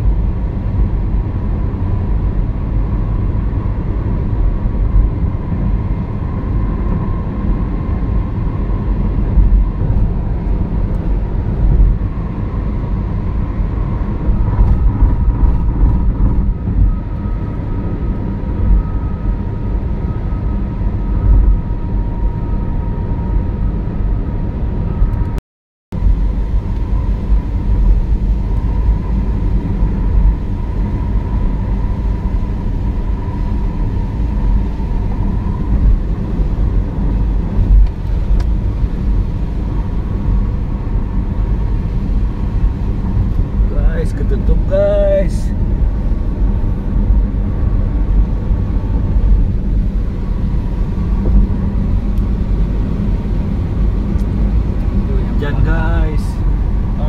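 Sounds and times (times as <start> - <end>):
car road and tyre rumble: 0.0 - 57.0
person speaking: 43.7 - 45.5.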